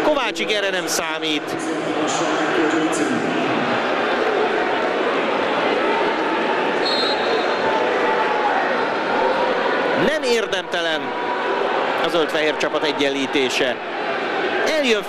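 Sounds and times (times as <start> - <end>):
stadium crowd din: 0.0 - 15.0
crowd chanting: 1.8 - 10.1, 13.7 - 15.0
short high whistle: 6.8 - 7.4.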